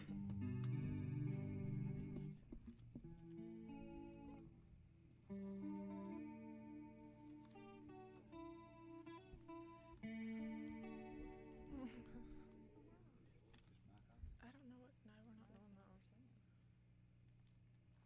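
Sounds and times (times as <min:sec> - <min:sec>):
electric guitar: 0:00.0 - 0:13.1
piano chords: 0:05.3 - 0:13.1.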